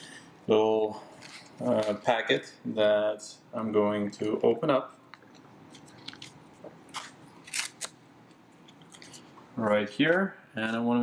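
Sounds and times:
foil sachet tearing and crinkling: 6.9s - 8.0s.

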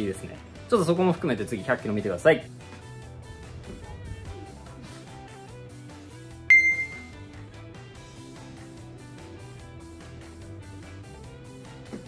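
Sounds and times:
background guitar music: 0.0s - 12.0s
bright metallic ding: 6.5s - 7.1s.

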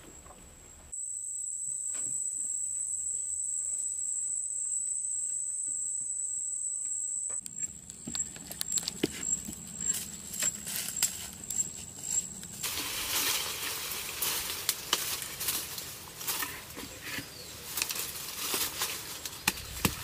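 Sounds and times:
high-pitched insect buzzing: 1.0s - 12.7s
bare feet crunching dry leaves: 7.8s - 20.0s.

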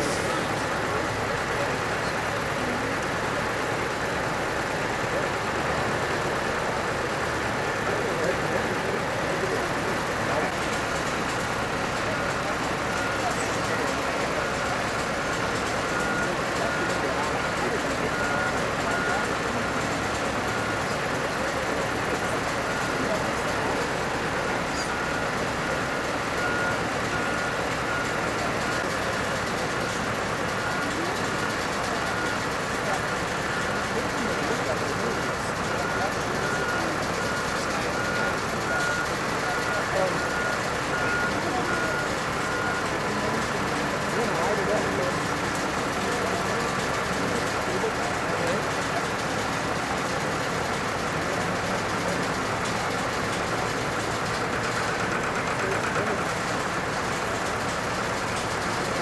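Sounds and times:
reversing alarm beeping: 0.0s - 50.2s
heavy vehicle engines: 0.0s - 59.0s
voices: 0.0s - 59.0s.

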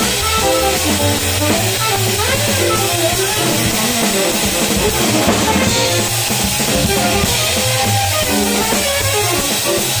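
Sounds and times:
double bass line: 0.0s - 9.4s
drum kit cymbals: 0.0s - 10.0s
jazz melodic lines: 0.0s - 10.0s.

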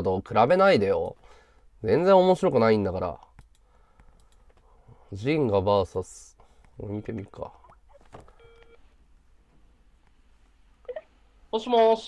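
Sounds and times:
low room hiss: 0.0s - 12.0s
click: 3.2s - 4.6s.

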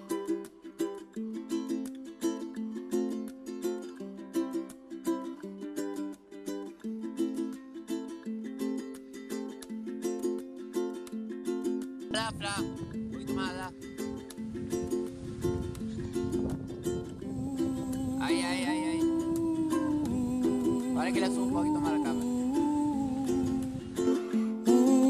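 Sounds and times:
ukulele plucking: 0.0s - 25.0s.

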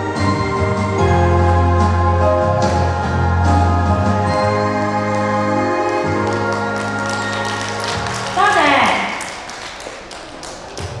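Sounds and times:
hand claps in a hall: 5.0s - 11.0s.

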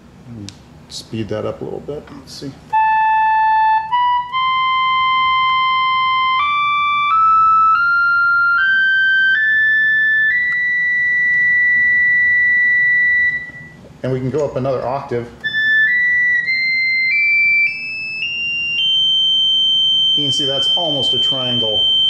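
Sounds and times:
electronic keyboard sustained notes: 2.7s - 13.8s, 15.4s - 22.0s.

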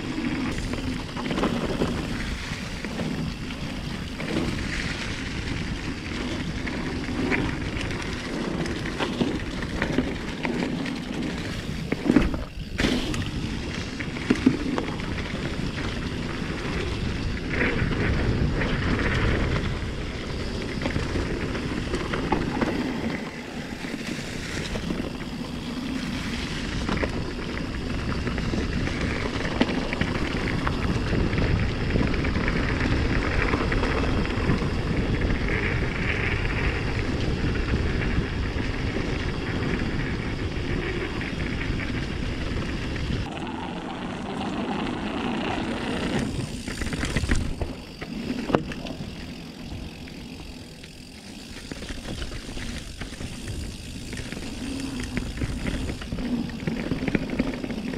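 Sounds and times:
bike clicks and rattles: 0.0s - 57.9s
bike tyres on dirt and leaves: 0.0s - 57.9s
wind on microphone: 0.0s - 57.9s.

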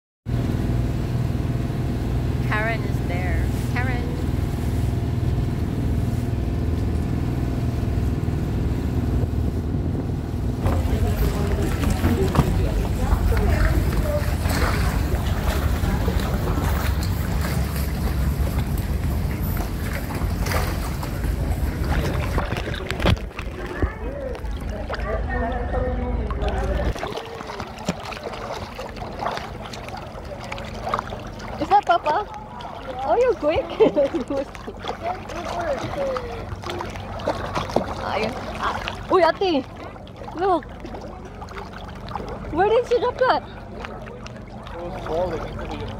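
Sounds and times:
boat engine droning: 0.3s - 45.9s
low rumble: 0.3s - 45.9s
water lapping and sloshing: 0.3s - 45.9s
voices: 2.4s - 4.4s, 10.6s - 45.9s
small water splashes: 10.5s - 45.9s.

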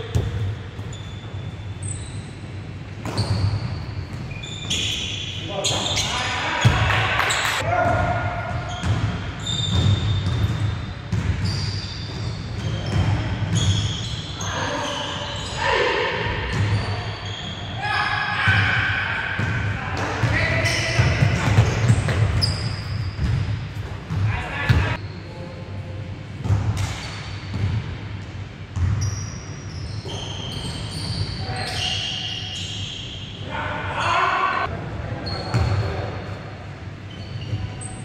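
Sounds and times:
basketball bouncing: 0.1s - 0.9s, 8.7s - 13.8s, 19.4s - 25.0s, 28.7s - 29.0s.

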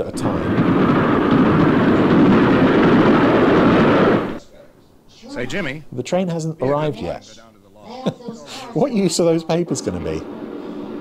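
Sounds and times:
train rushing at speed: 0.0s - 4.4s, 8.7s - 11.0s.

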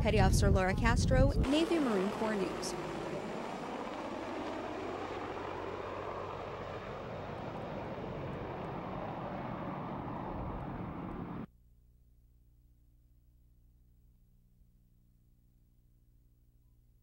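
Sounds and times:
helicopter flying past: 1.4s - 11.5s.

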